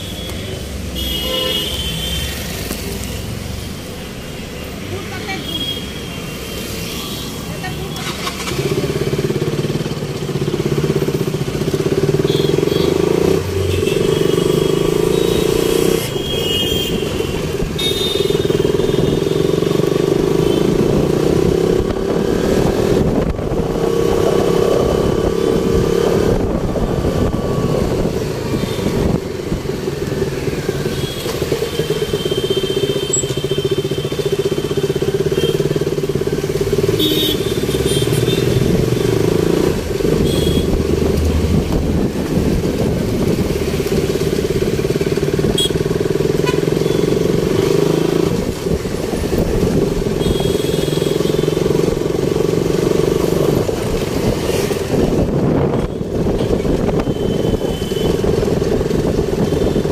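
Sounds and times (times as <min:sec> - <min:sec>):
car and motorbike engines: 0:00.0 - 0:59.9.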